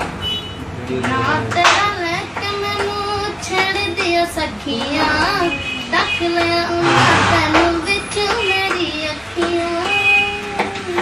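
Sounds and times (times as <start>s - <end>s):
boy singing: 0.9s - 11.0s.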